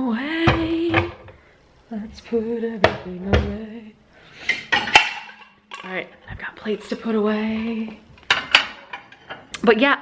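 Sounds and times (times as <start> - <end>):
dishes clattering: 4.4 - 9.5
dishes clinking: 4.4 - 9.5.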